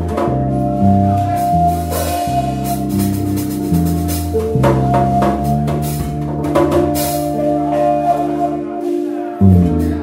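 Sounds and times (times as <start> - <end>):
bass guitar: 0.0 - 10.0.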